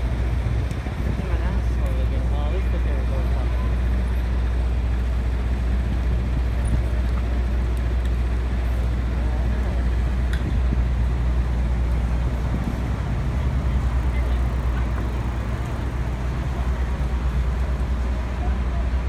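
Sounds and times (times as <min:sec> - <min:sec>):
city street traffic rumble: 0:00.0 - 0:19.0.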